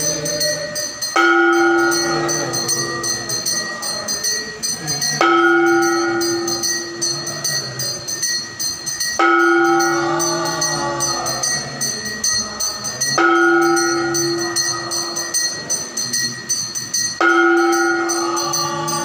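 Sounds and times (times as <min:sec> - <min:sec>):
large bell ringing: 0:00.0 - 0:19.0
small bells jingling: 0:00.0 - 0:19.0.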